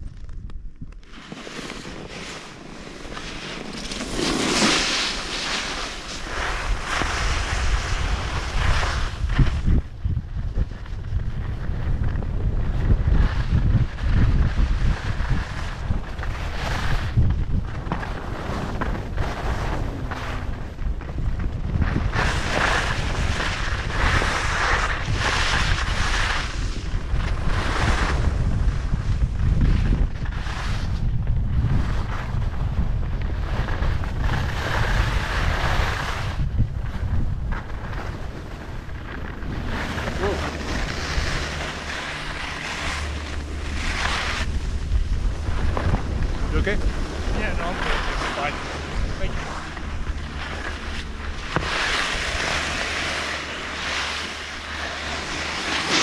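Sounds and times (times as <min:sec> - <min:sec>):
wind buffeting microphone: 0:00.0 - 0:56.0
skis scraping on packed snow: 0:01.0 - 0:56.0.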